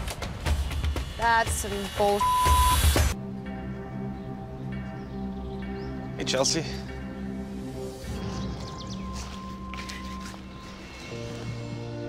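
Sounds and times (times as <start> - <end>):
censor bleep: 2.2 - 2.9
music with long held notes: 3.2 - 12.0.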